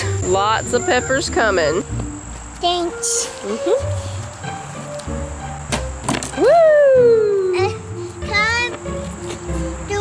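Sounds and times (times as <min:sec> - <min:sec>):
background music: 0:00.0 - 0:10.0
loud pitch-sweeping whoop: 0:06.4 - 0:07.5.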